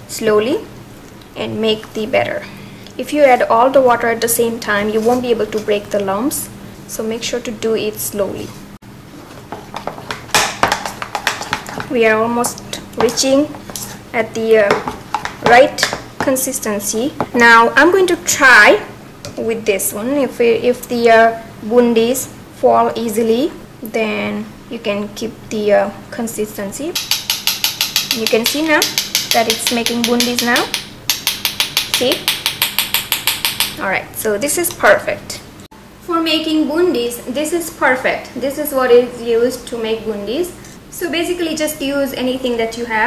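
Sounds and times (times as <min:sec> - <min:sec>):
batter being stirred: 0:09.1 - 0:17.4, 0:27.0 - 0:33.8.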